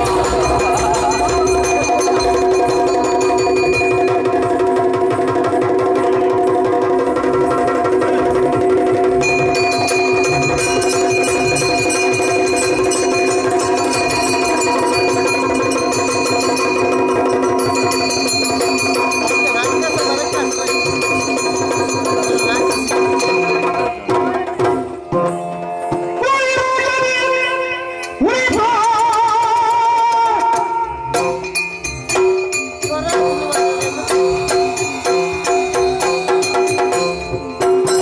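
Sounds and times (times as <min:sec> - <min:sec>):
barrel drum fast rhythm: 0:00.0 - 0:27.6, 0:28.2 - 0:38.0.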